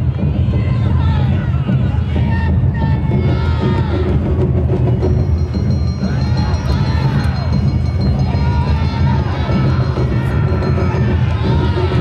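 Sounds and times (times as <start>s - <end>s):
crowd murmuring: 0.0s - 12.0s
festival band music: 0.0s - 12.0s
steady drumming: 0.0s - 12.0s.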